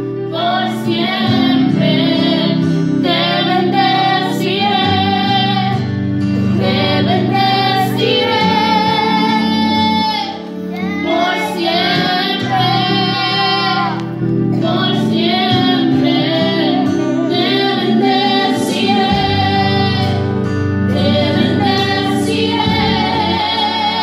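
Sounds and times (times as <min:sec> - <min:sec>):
backing accompaniment: 0:00.0 - 0:24.0
woman singing worship song: 0:00.0 - 0:24.0.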